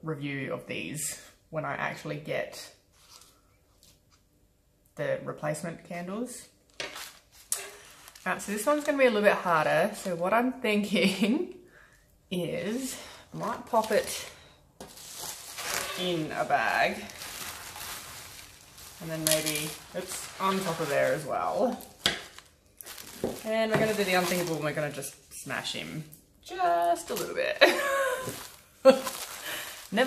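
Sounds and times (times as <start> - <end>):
bubble-wrap bag rustling: 6.6 - 10.2, 12.7 - 25.9, 26.5 - 30.0.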